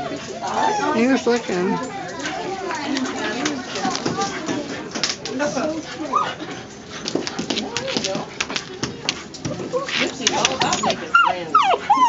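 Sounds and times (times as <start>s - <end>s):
people's voices: 0.0s - 12.0s
puppy claws clicking on tiles: 0.4s - 5.8s, 6.5s - 11.1s.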